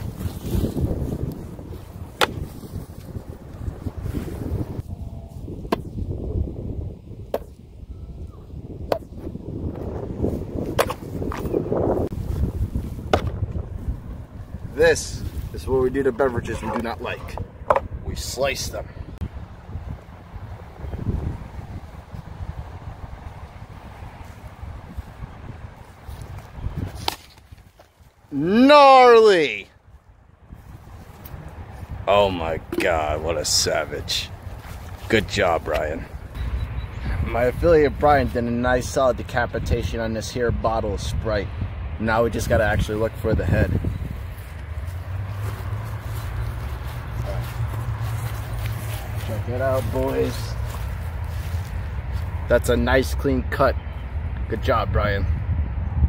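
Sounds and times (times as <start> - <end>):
footsteps through grass: 0.0 - 4.8, 23.2 - 28.3, 33.7 - 36.4, 44.0 - 52.5
wind buffeting microphone: 0.0 - 56.0.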